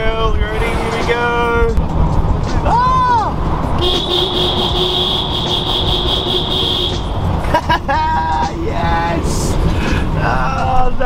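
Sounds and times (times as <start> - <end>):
van engine and road noise: 0.0 - 11.0
vehicle horn long blast: 3.8 - 7.1.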